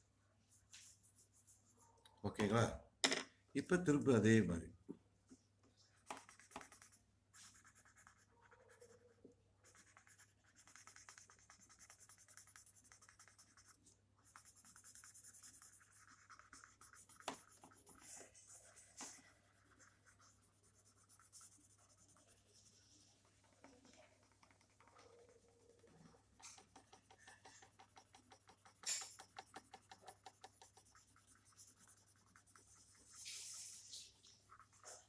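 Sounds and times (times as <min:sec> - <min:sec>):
pencil shading on paper: 0:06.0 - 0:35.0.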